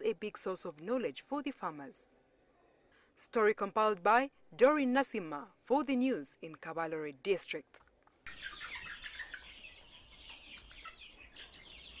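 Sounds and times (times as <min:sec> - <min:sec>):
chickens clucking: 0:08.2 - 0:12.0.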